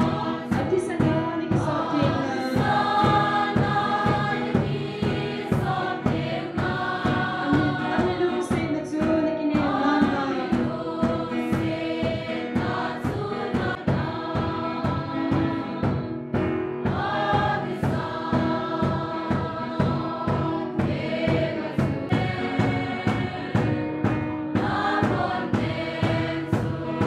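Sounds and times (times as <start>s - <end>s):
choir singing a hymn: 0.0s - 27.0s
steady drum beat: 0.0s - 27.0s.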